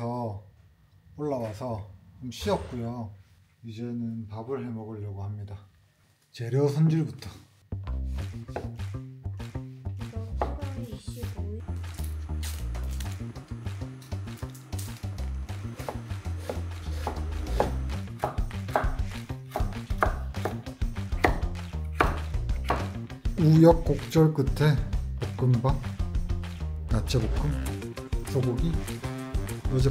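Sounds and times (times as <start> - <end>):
background music with bass line: 7.7 - 29.9
knife chopping on wooden board: 8.1 - 9.1, 15.4 - 23.0.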